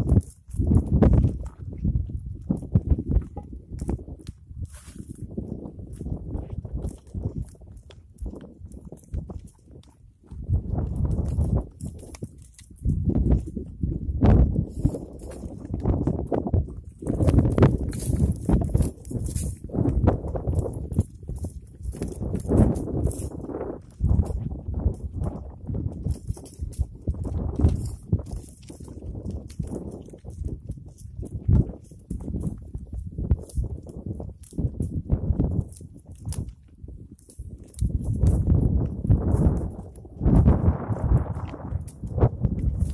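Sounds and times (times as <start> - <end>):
goats rustling shrub branches: 4.6 - 7.5, 10.5 - 13.4, 14.3 - 24.9, 25.8 - 42.9.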